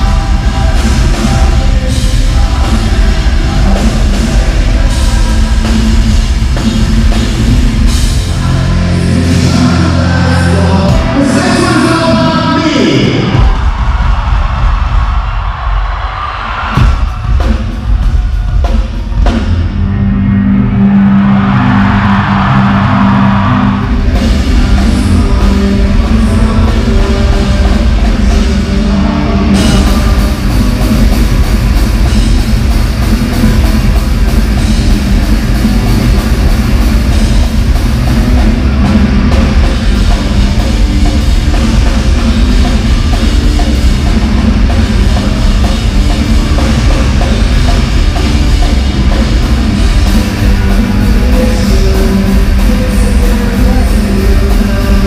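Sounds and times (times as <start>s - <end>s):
drum kit beat: 0.0s - 12.5s, 13.3s - 19.8s, 21.2s - 55.0s
live rock band playing: 0.0s - 15.6s, 16.7s - 55.0s
electric guitar: 19.2s - 55.0s.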